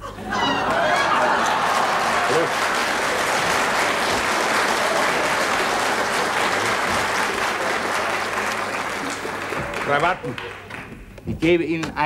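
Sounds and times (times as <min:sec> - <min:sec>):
audience applauding: 0:00.4 - 0:11.0.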